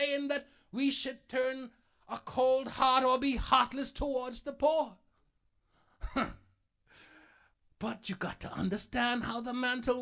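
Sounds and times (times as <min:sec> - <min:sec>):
person chuckling: 0:06.0 - 0:06.6.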